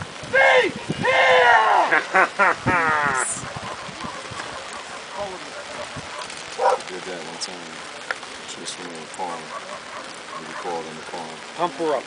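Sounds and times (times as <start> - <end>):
steady outdoor noise: 0.0 - 12.0
person shouting to a dog: 0.3 - 1.9.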